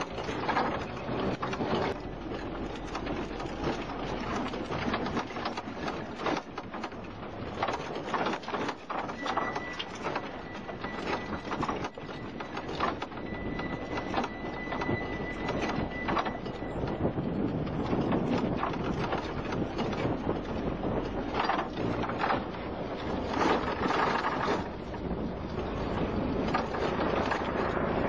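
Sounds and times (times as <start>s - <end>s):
engine and road rumble: 0.0s - 28.0s
vehicle body rattling: 0.0s - 28.0s.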